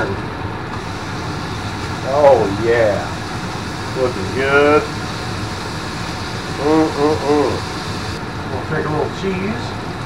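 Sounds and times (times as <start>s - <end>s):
burger patties sizzling on griddle: 0.8s - 8.2s.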